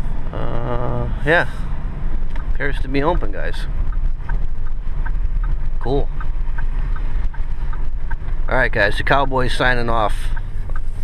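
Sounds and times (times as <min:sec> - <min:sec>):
engine and road rumble: 0:00.0 - 0:11.0
turn signal ticking: 0:00.0 - 0:11.0.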